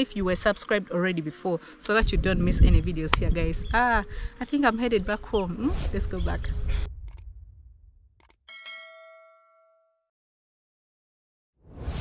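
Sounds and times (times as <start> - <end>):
bell ding: 8.5 - 10.1.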